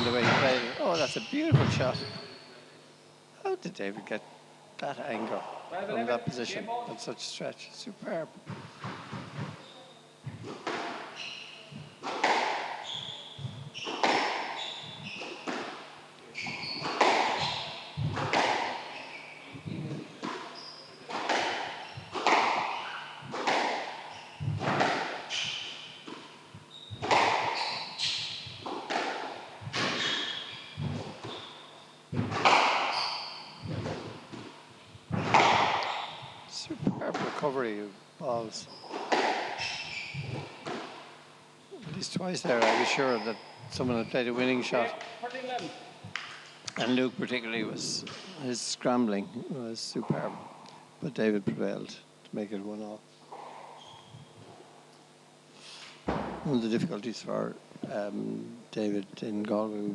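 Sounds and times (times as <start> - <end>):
squash ball hitting rackets and walls: 0.0 - 2.1, 8.4 - 9.6, 10.2 - 37.4, 38.7 - 41.1, 41.9 - 46.4, 56.1 - 56.5
shoes squeaking on wooden floor: 0.0 - 2.4, 8.5 - 15.7, 16.3 - 37.1, 38.6 - 40.8, 41.7 - 45.6, 53.7 - 54.6.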